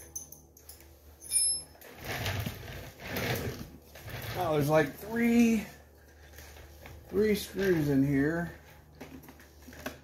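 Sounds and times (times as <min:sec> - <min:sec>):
metallic ring: 0:00.0 - 0:01.8.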